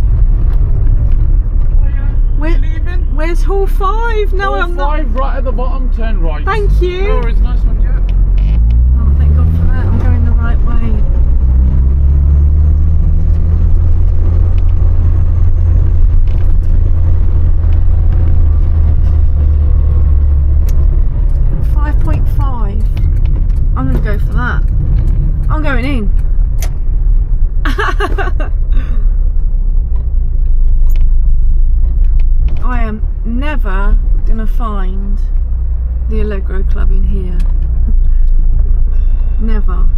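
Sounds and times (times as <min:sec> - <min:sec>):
car engine heard from cabin: 0:00.0 - 0:39.9.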